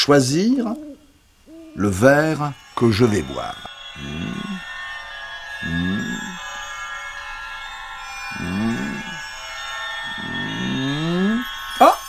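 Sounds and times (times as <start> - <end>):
low sliding tones: 1.5 - 11.6
high shimmering chord: 1.5 - 12.0.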